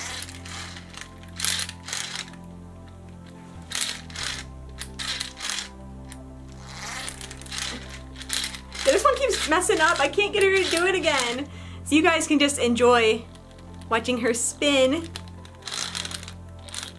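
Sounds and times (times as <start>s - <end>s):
plastic toy launcher clicks and rattles: 0.0s - 2.4s, 3.6s - 5.7s, 6.6s - 11.4s, 15.0s - 16.9s
background music with sustained chords: 0.0s - 16.9s.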